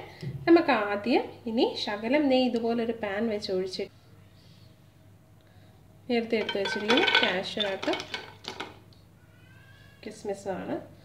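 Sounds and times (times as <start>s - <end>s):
nuts clattering into frying pan: 6.2s - 8.8s.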